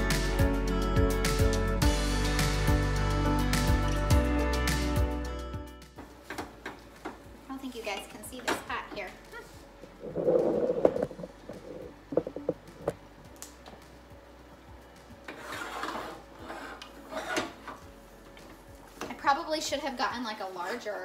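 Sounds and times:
wooden spoon scraping pot: 15.3s - 17.6s.

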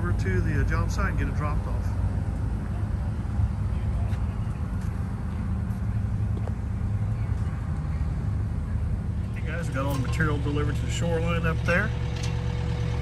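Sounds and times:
engine low drone: 0.0s - 13.0s.

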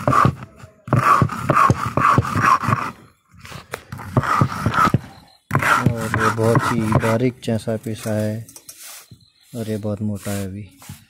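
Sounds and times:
stone scraping on grinding stone: 3.9s - 7.2s.

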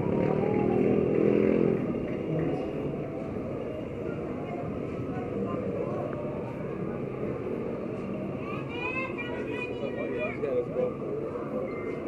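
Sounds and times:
people talking nearby: 0.0s - 12.0s
traffic rumble: 0.0s - 12.0s.

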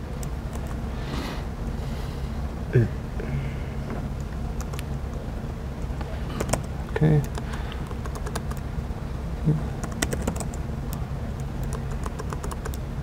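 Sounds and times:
steady low hum: 0.0s - 13.0s
laptop keyboard typing: 0.5s - 0.8s, 4.6s - 5.0s, 6.4s - 8.6s, 9.8s - 10.6s, 11.4s - 12.8s.

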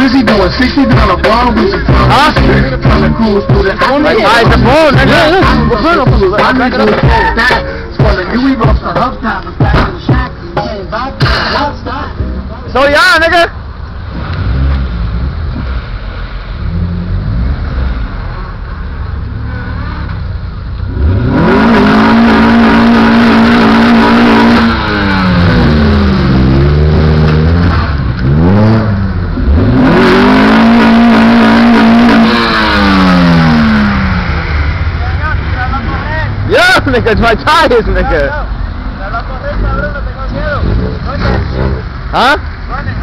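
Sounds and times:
car engine revving hard: 0.0s - 7.2s, 14.0s - 20.1s, 20.8s - 36.3s, 39.4s - 43.0s
tires spinning: 0.0s - 43.0s.

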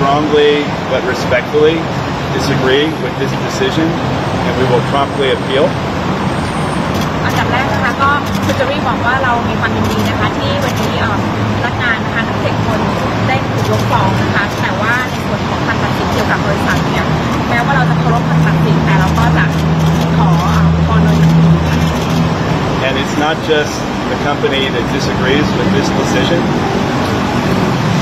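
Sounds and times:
traffic noise: 0.0s - 28.0s
woman talking: 7.2s - 22.2s.

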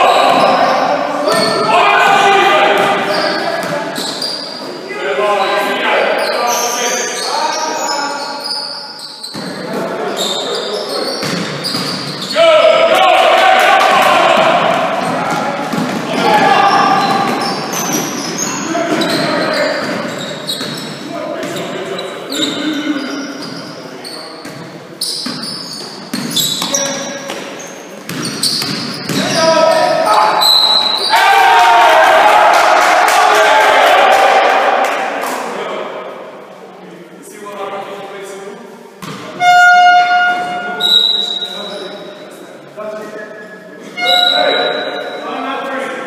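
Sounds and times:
players shouting in a hall: 0.0s - 3.6s, 12.3s - 19.6s, 29.2s - 36.0s
basketball bouncing: 14.4s - 21.6s, 28.1s - 29.4s.

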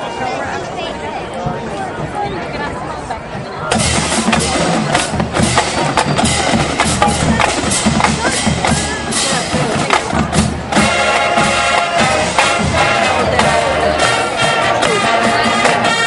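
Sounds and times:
crowd chatter: 0.0s - 16.0s
marching band drums: 3.7s - 16.0s.

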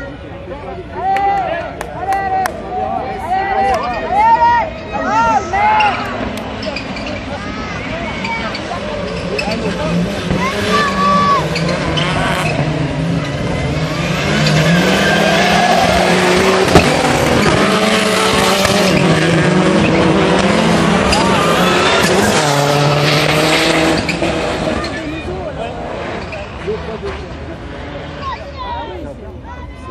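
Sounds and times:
racing car engines revving: 2.5s - 29.9s.

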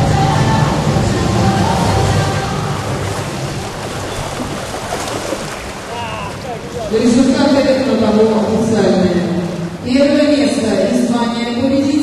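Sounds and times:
water churning and splashing: 0.0s - 10.8s.

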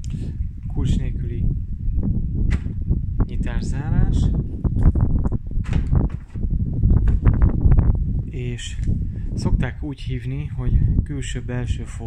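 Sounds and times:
low rumble of microphone noise: 0.0s - 12.0s
sharp click: 2.5s - 2.8s.

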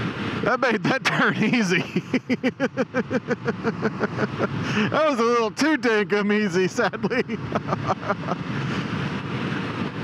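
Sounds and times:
motorcycle riding at speed: 0.0s - 10.0s
man laughing: 0.6s - 5.4s, 6.4s - 8.5s.

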